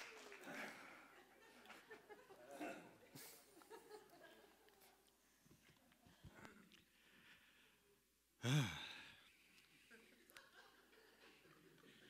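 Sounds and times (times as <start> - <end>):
man sighing: 8.4 - 9.3.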